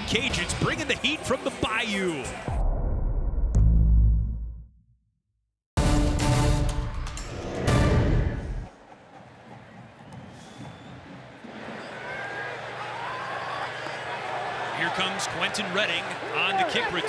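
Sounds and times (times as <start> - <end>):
stadium crowd cheering: 0.0 - 2.6, 8.1 - 17.0
crowd whistling: 8.2 - 17.0.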